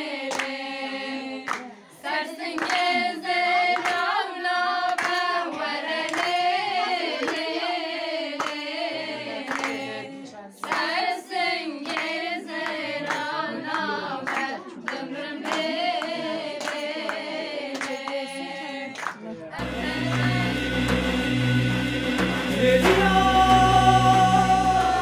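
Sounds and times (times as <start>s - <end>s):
women singing folk song: 0.0s - 25.0s
hand-clapping: 0.2s - 0.6s, 1.5s - 1.7s, 2.5s - 4.2s, 4.8s - 8.8s, 9.4s - 10.0s, 10.6s - 25.0s.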